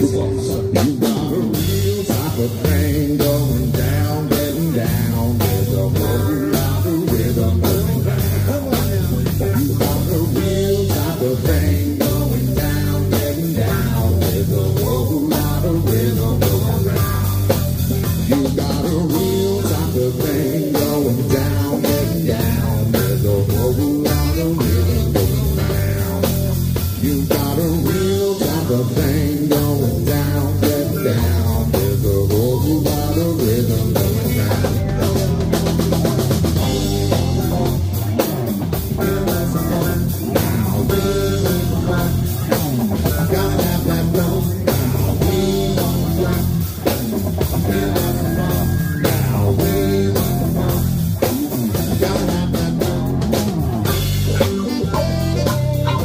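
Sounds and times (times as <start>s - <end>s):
drum kit beat: 0.0s - 56.0s
electric guitars: 0.0s - 56.0s
keyboard: 0.0s - 56.0s.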